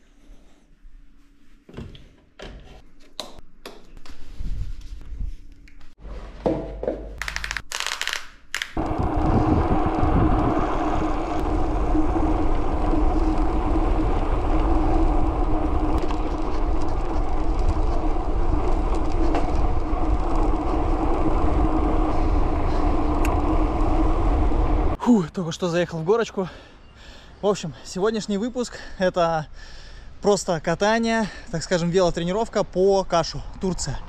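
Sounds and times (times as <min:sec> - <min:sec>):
tyres humming on asphalt: 0:08.8 - 0:25.0
wind buffeting microphone: 0:08.8 - 0:25.0.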